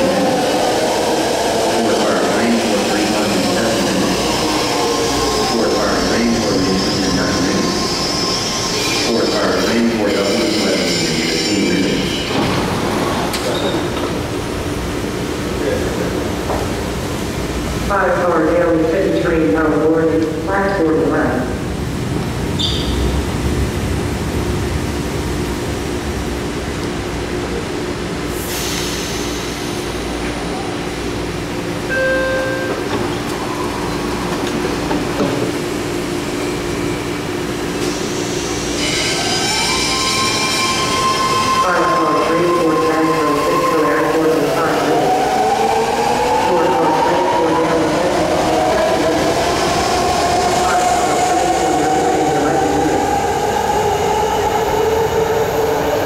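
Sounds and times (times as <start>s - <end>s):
train motors humming: 0.0s - 10.7s, 32.7s - 56.0s
brief high squeal: 22.6s - 23.0s.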